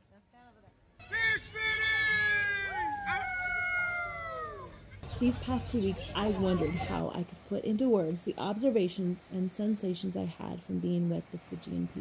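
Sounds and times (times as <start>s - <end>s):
man's high-pitched shouted call: 1.0s - 3.5s.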